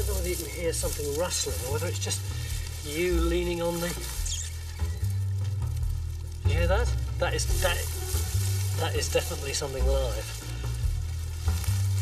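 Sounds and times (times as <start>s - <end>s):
low background music: 0.0s - 12.0s.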